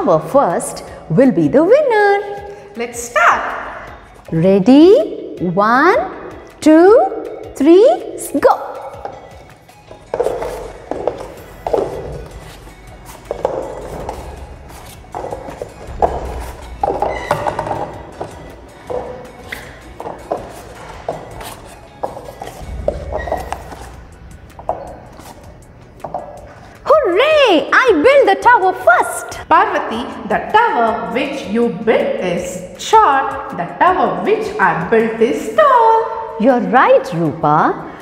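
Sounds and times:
woman speaking: 0.0s - 9.0s, 26.8s - 37.8s
background music: 0.0s - 38.0s.

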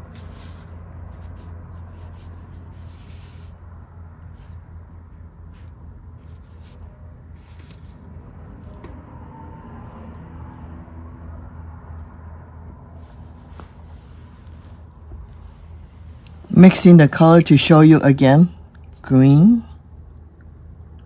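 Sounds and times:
brush strokes rubbing on paper: 0.0s - 3.7s, 5.5s - 8.2s, 13.0s - 16.9s
low background hum: 0.0s - 21.0s.

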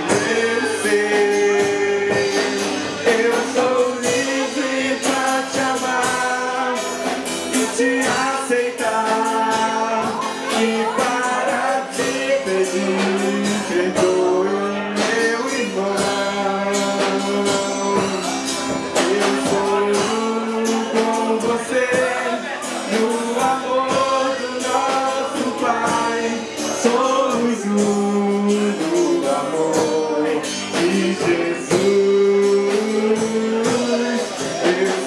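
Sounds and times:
acoustic guitar: 0.0s - 35.0s
drum kit beat: 0.0s - 35.0s
people singing: 0.0s - 35.0s.

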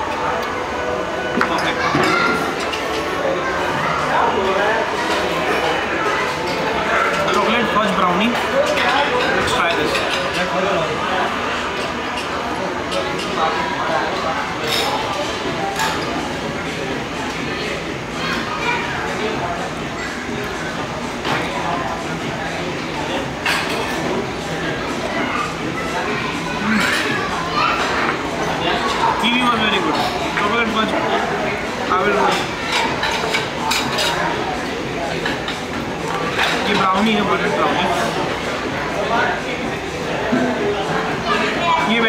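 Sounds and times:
chatter of many diners: 0.0s - 42.0s.

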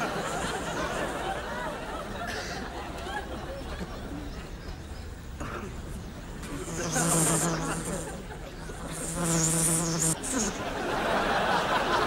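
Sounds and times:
housefly buzzing: 6.4s - 8.2s, 8.8s - 10.6s.

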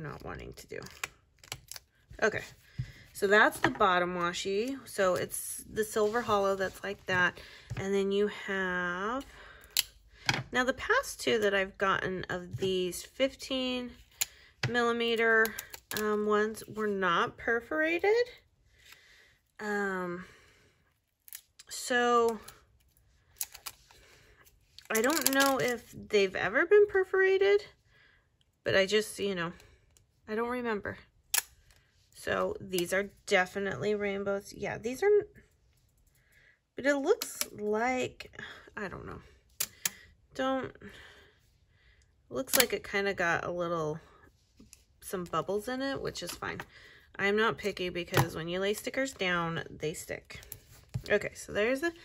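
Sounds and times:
woman speaking: 0.0s - 1.0s, 2.2s - 2.5s, 3.2s - 9.3s, 10.5s - 14.0s, 14.6s - 18.4s, 19.6s - 20.3s, 21.7s - 22.5s, 24.9s - 27.7s, 30.3s - 31.0s, 32.2s - 35.4s, 36.8s - 39.3s, 40.4s - 40.9s, 42.3s - 44.1s, 45.0s - 46.6s, 47.2s - 52.0s.

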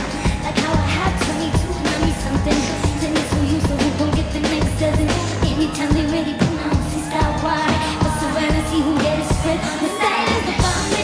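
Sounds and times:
drums and cymbals: 0.0s - 11.0s
live pop band playing: 0.0s - 11.0s
person singing: 0.0s - 11.0s.

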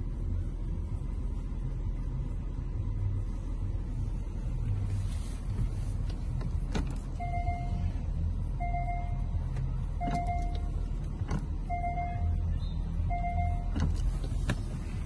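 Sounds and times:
diesel engine idling: 0.0s - 15.0s.

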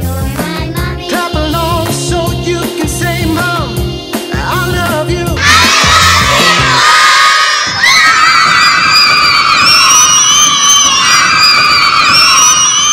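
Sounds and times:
backing music: 0.0s - 7.8s
children cheering and shrieking: 5.4s - 12.9s.

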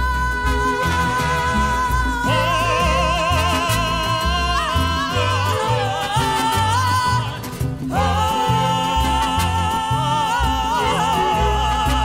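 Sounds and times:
mariachi band playing: 0.0s - 12.0s.

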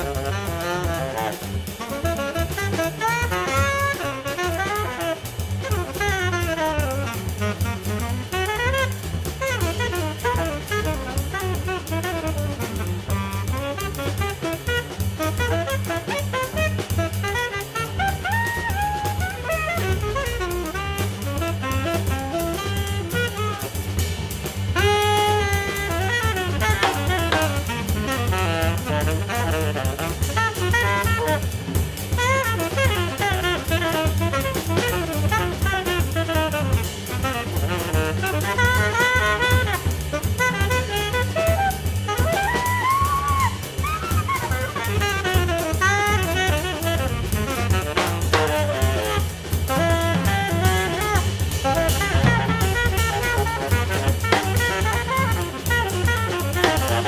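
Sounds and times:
saxophone improvising: 0.0s - 23.7s, 24.8s - 31.6s, 32.2s - 57.0s
double bass: 0.0s - 57.0s
drum kit: 0.0s - 57.0s.

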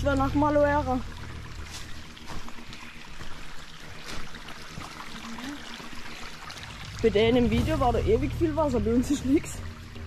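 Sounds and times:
faint trickle of water: 0.0s - 10.0s.

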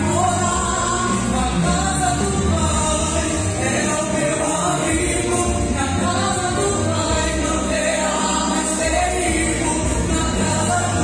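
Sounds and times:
instrumental backing with bass: 0.0s - 11.0s
woman singing into microphone: 0.0s - 11.0s.

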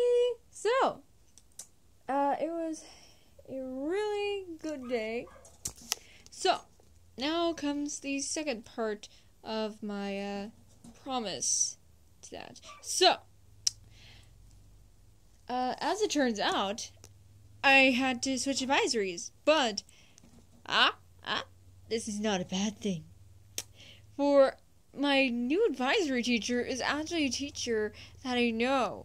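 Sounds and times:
woman speaking: 0.0s - 1.0s, 2.1s - 5.3s, 6.4s - 13.2s, 15.5s - 16.9s, 17.6s - 19.8s, 20.7s - 23.1s, 24.2s - 29.0s
girl's wordless vocal sound: 2.1s - 5.2s.

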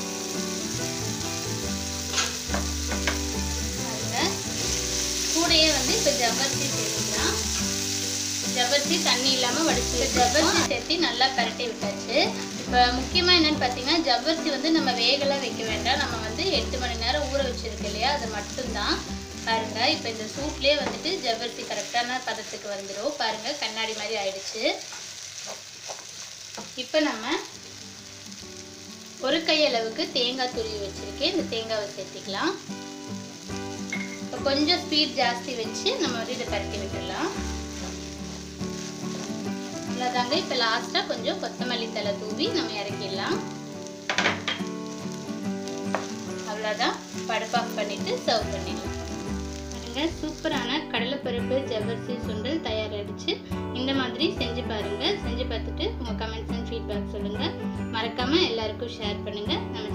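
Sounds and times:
food sizzling in hot oil: 0.0s - 59.9s
wooden spatula stirring: 36.8s - 40.5s.

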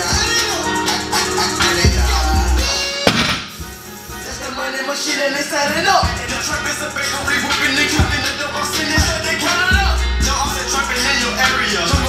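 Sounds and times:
background music: 0.0s - 12.0s
barbell thudding on floor: 3.1s - 3.6s.

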